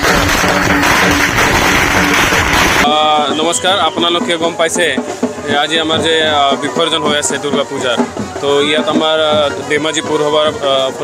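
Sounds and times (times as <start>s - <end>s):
firecrackers crackling: 0.0s - 3.1s
procession music with drumming: 0.0s - 11.0s.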